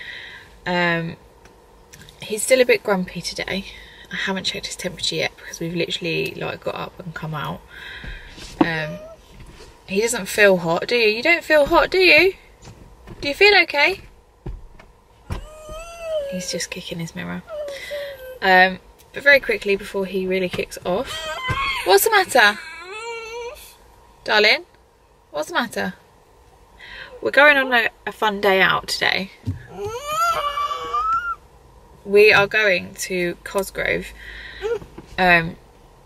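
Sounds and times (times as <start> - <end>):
dull thumps of kicking: 8.0 - 9.8, 11.4 - 16.3, 19.3 - 22.4, 29.4 - 30.5
child whining: 8.8 - 9.2, 15.3 - 16.4, 17.5 - 18.5, 21.1 - 21.9, 22.6 - 23.7, 29.7 - 31.4, 34.6 - 34.9.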